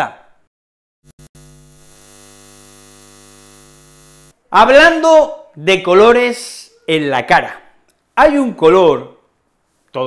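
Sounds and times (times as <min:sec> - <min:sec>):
neon sign buzzing: 0:01.0 - 0:04.4.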